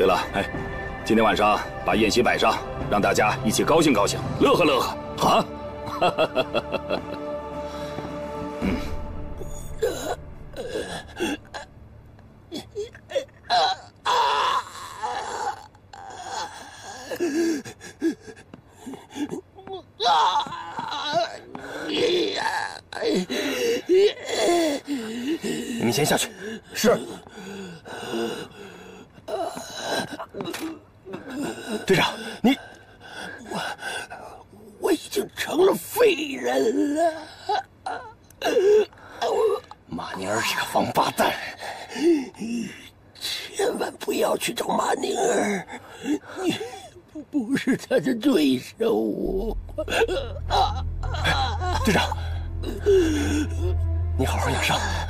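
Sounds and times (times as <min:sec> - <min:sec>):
man wailing and sobbing: 0:08.5 - 0:11.7, 0:12.5 - 0:28.5, 0:36.4 - 0:39.8, 0:44.8 - 0:47.7, 0:49.2 - 0:55.0
man crying out: 0:19.2 - 0:24.8, 0:49.2 - 0:55.0
man groaning in pain: 0:19.2 - 0:25.9, 0:49.2 - 0:55.0.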